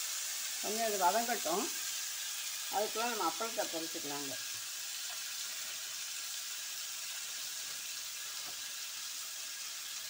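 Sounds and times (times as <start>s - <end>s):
oil sizzling in a pan: 0.0s - 10.0s.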